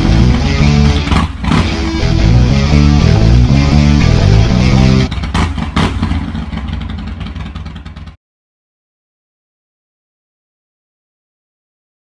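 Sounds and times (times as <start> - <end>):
motorcycle engine revving: 0.0 - 8.2.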